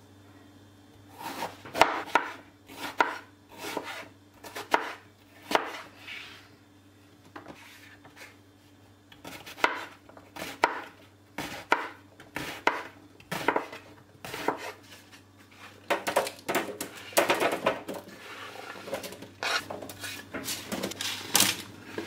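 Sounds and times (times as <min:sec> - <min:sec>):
knife chopping on wooden board: 0:01.2 - 0:05.8, 0:09.2 - 0:14.8
cubes scraped onto baking tray: 0:18.1 - 0:21.3.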